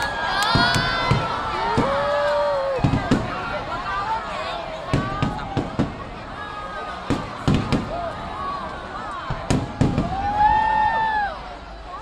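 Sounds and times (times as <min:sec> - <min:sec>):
fireworks bangs: 0:00.0 - 0:10.8.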